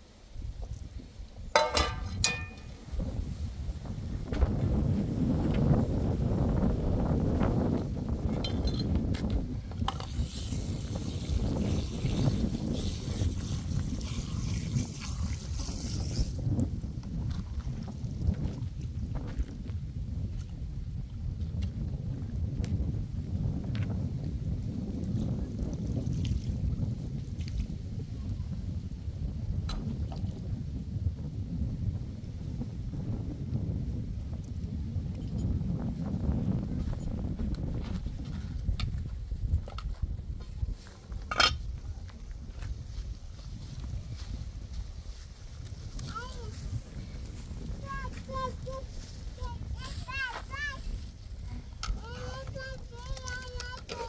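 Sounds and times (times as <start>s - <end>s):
wind buffeting microphone: 0.0s - 54.0s
water splashing from hose: 9.9s - 16.5s.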